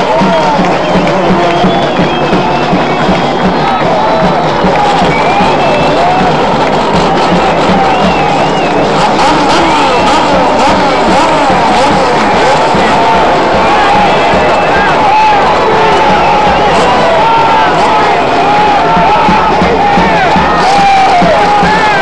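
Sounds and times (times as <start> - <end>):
crowd shouting and cheering: 0.0 - 22.0
race car engines: 0.0 - 22.0.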